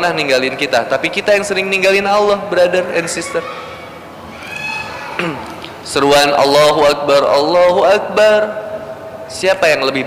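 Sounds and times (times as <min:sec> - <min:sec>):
faint high-pitched voice-like call: 0:03.0 - 0:05.4.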